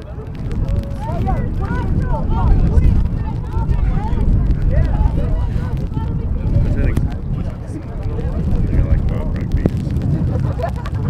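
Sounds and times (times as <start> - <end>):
distant voices calling out: 0.0 - 10.2
wind rumbling on microphone: 0.0 - 11.0.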